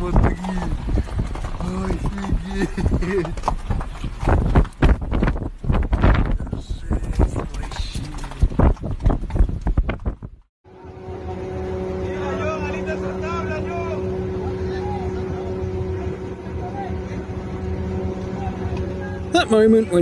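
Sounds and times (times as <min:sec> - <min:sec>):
boat engine humming: 0:00.0 - 0:04.8, 0:10.7 - 0:20.0
crackling clicks and knocks: 0:00.0 - 0:10.5.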